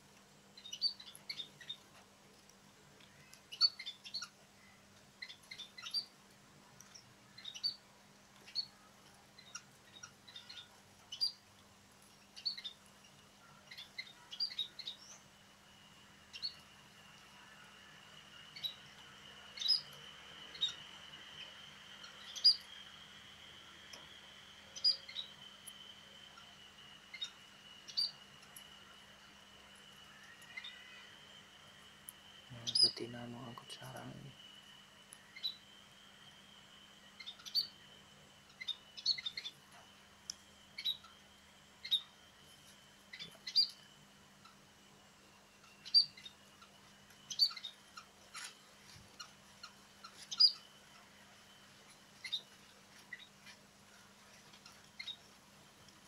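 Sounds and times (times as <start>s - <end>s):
faint low hum: 0.0s - 56.0s
small birds chirping: 0.4s - 56.0s
steady high whine: 12.6s - 56.0s.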